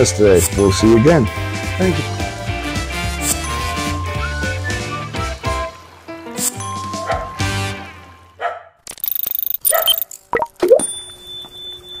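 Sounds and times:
fast buzzing rattle: 8.9s - 10.3s
cartoon pops and swoops: 10.4s - 10.8s.

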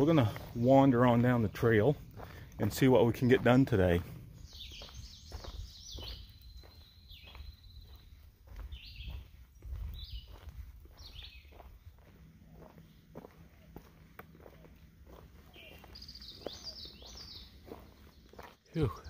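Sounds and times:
footsteps on dirt trail: 0.0s - 19.0s
songbird chirping: 0.0s - 19.0s.

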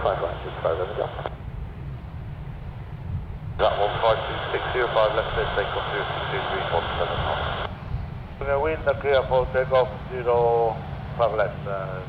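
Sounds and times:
radio voice transmission: 0.0s - 1.4s, 3.6s - 7.7s, 8.4s - 12.0s
jet engines rumbling: 0.0s - 12.0s.

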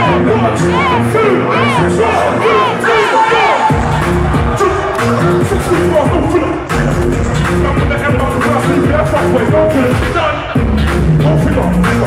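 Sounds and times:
crowd cheering: 0.0s - 8.6s
live music with heavy bass: 0.0s - 12.0s.

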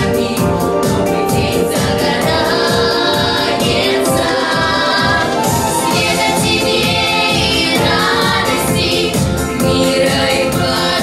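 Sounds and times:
backing music with steady beat: 0.0s - 11.0s
girls singing together: 0.0s - 11.0s.

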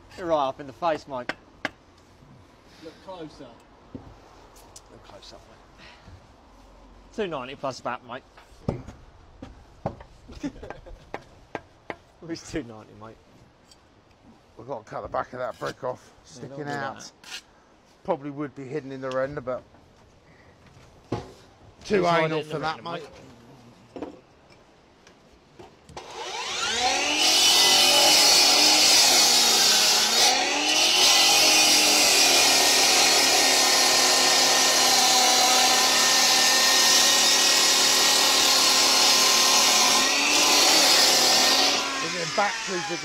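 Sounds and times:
saw cutting through brick: 26.0s - 43.0s.

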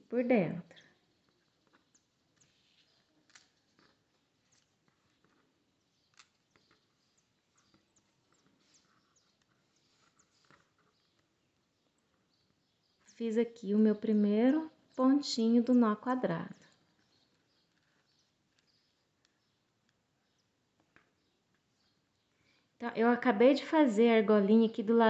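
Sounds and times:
fingers knotting cord clicks and rustles: 0.8s - 13.4s, 16.6s - 22.7s.

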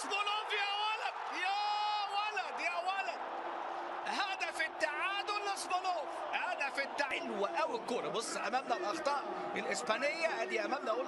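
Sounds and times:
man commentating: 0.0s - 3.2s, 4.0s - 11.0s
stadium crowd noise: 0.0s - 11.0s.

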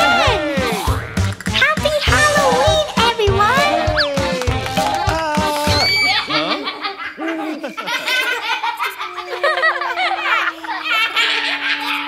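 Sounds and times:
cartoon voice laughing: 3.7s - 12.0s.

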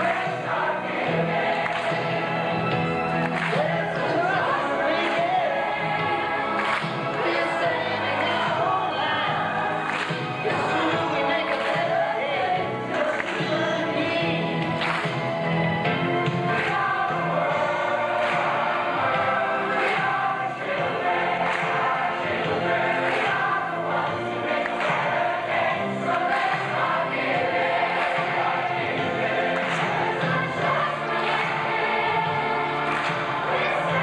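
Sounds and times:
large choir singing: 0.0s - 34.0s.

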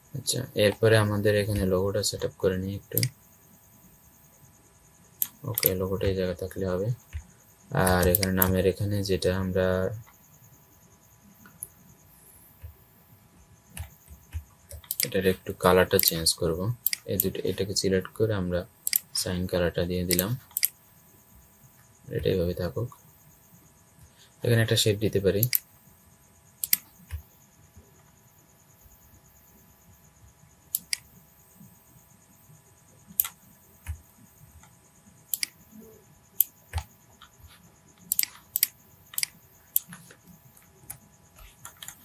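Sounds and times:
man speaking: 0.1s - 3.1s, 5.4s - 7.0s, 7.7s - 10.0s, 15.0s - 20.5s, 22.1s - 23.0s, 24.4s - 25.6s
man talking: 0.1s - 3.1s, 5.4s - 7.0s, 7.7s - 10.0s, 15.0s - 20.5s, 22.1s - 23.0s, 24.4s - 25.6s
keyboard clicks: 2.8s - 3.2s, 5.2s - 8.6s, 13.7s - 16.2s, 16.8s - 17.4s, 18.8s - 19.2s, 20.0s - 20.8s, 25.4s - 25.7s, 26.6s - 27.3s, 30.7s - 31.2s, 33.1s - 42.0s.

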